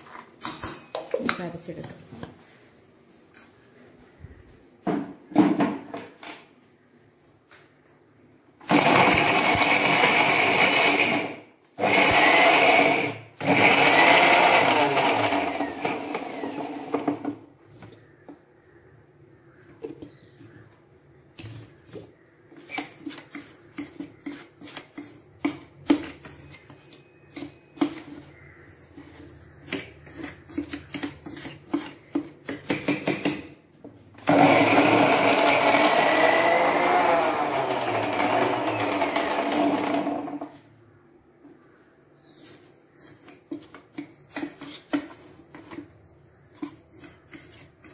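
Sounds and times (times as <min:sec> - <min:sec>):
mixer grinder grinding: 0:08.6 - 0:17.3, 0:34.2 - 0:40.5.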